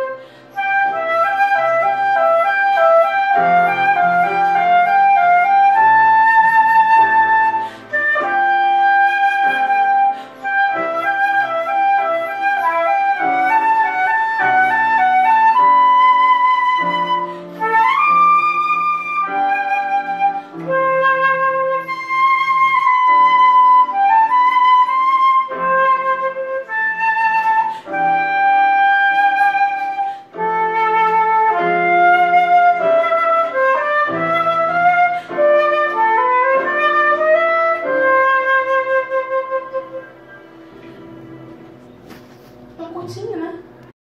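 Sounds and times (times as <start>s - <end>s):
flute playing slow melody: 0.0s - 42.1s
electronic keyboard accompaniment: 0.0s - 44.0s.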